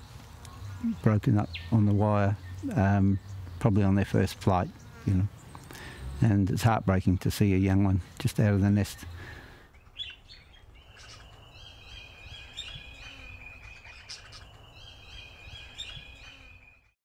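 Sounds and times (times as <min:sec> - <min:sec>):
birds chirping: 0:00.0 - 0:17.0.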